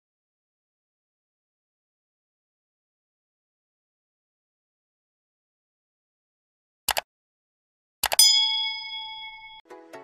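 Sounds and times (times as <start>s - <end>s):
bright bell ding: 8.2s - 9.6s.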